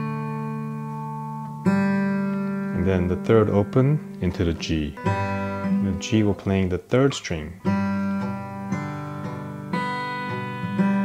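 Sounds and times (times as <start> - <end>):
acoustic guitar strings plucked: 0.0 - 11.0.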